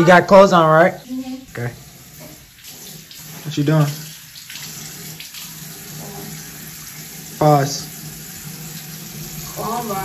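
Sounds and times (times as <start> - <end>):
water pouring into sink: 1.5 - 10.0.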